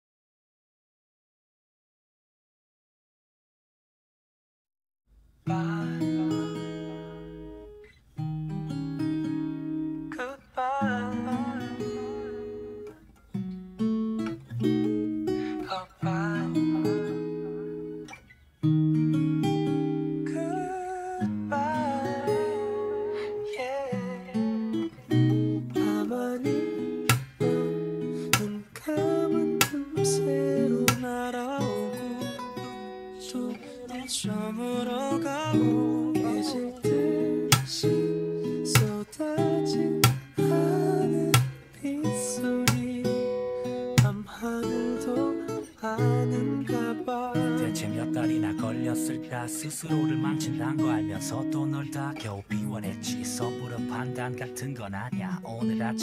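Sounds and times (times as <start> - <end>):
fingerpicked acoustic guitar chords: 5.1 - 56.0
wordless singing with vibrato: 5.5 - 6.9, 10.1 - 12.6, 15.3 - 17.4, 20.2 - 56.0.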